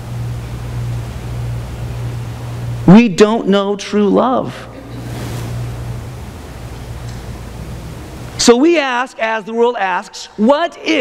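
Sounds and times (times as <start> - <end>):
low even hum: 0.0 - 11.0.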